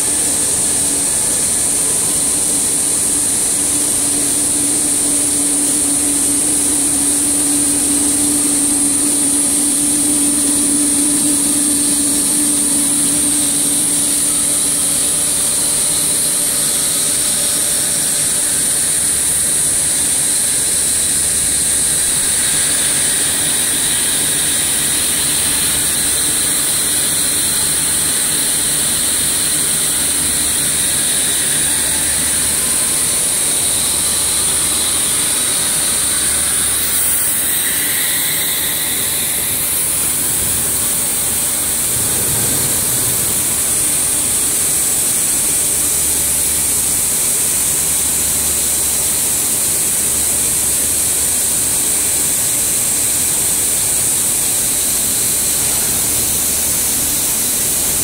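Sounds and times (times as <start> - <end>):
machinery hissing: 0.0 - 47.5
low machine hum: 0.0 - 58.0.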